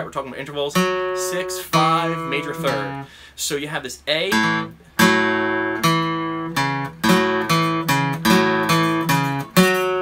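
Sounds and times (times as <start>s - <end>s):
acoustic guitar strumming blues shuffle: 0.0s - 10.0s.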